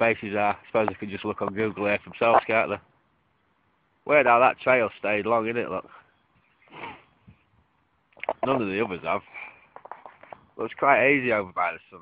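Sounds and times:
faint breath: 5.9 - 7.5, 9.2 - 9.8.

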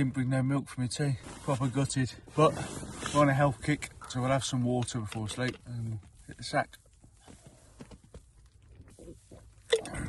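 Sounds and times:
sips and swallows: 9.0 - 10.0
sudden mouth sound: 9.0 - 10.0.

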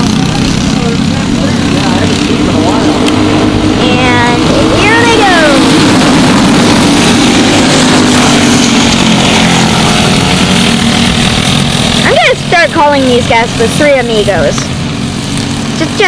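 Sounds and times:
racing kart engines droning: 0.0 - 16.0.

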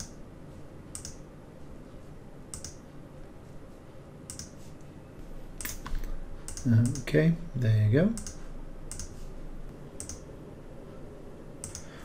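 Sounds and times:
computer mouse clicks: 0.0 - 0.2, 0.9 - 1.2, 2.5 - 2.8, 4.3 - 4.6, 5.6 - 7.1, 8.2 - 9.2, 10.0 - 10.3, 11.6 - 12.0
faint low hum: 0.0 - 12.0.

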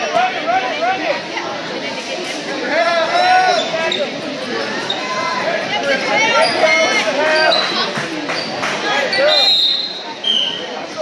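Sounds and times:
crowd shouting and babble: 0.0 - 11.0
loud shout: 2.7 - 3.8.

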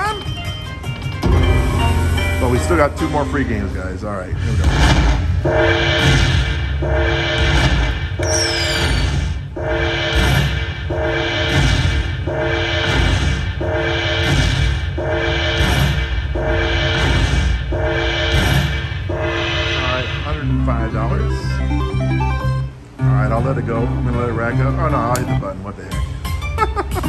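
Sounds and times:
slot machine chiming music: 0.0 - 4.1, 21.3 - 23.3
slot machine jingle: 0.0 - 4.1, 21.3 - 23.2.

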